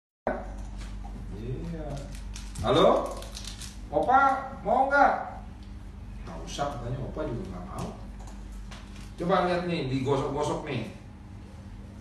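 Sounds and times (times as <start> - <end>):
steady low hum: 0.3 - 12.0.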